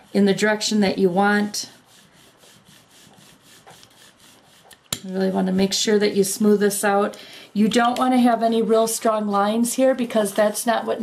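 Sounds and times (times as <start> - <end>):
rubber brayer rolling across paper: 0.0 - 6.0.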